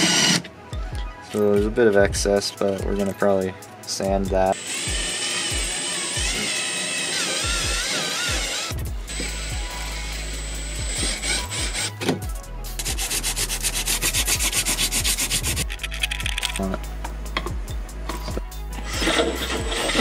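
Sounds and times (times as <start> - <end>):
power drill whining: 4.6 - 11.9
sandpaper rubbing on metal: 12.8 - 16.6, 18.8 - 20.0.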